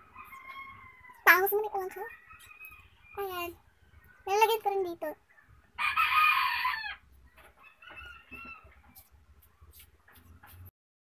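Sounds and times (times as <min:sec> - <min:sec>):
rooster crowing: 0:00.0 - 0:01.3, 0:05.8 - 0:09.1.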